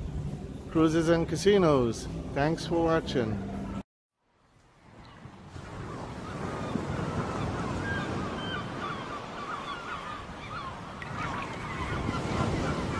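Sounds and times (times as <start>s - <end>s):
ocean surf washing: 4.7s - 12.9s
birds calling: 5.1s - 12.9s.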